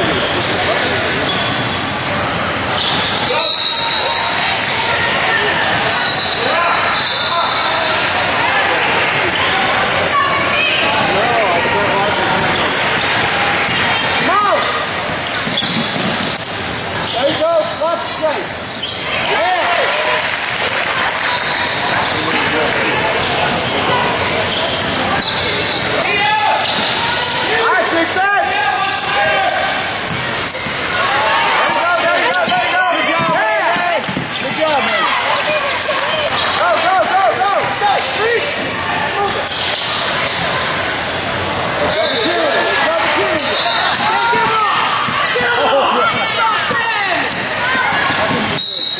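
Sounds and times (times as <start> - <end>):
people calling out in a gym: 0.0 - 48.9.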